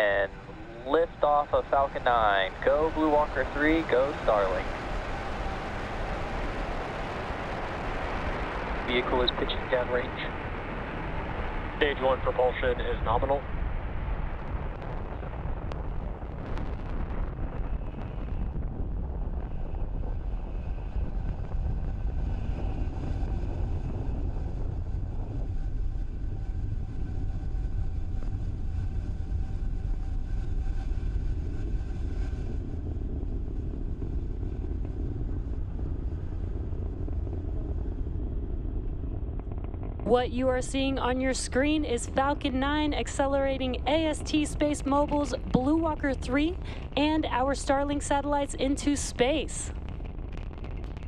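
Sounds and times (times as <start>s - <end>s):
rocket engines low rumble: 0.0s - 51.0s.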